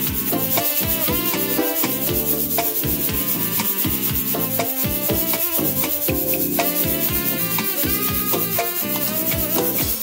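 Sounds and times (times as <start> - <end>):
metal shaker hissing strokes: 0.0 - 10.0
recorded song with bass line: 0.0 - 10.0.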